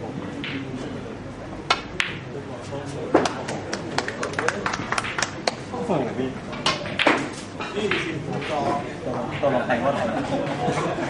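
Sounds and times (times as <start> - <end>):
snooker balls clicking: 1.7 - 2.2, 3.1 - 5.6, 6.5 - 9.6.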